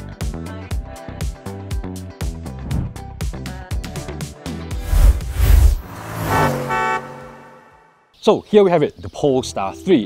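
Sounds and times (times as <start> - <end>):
deep whooshing hit: 4.8 - 6.7.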